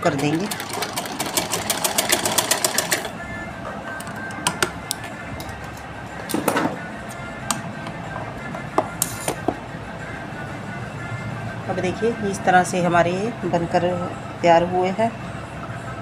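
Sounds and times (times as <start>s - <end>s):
sewing machine running fast: 0.0s - 3.1s.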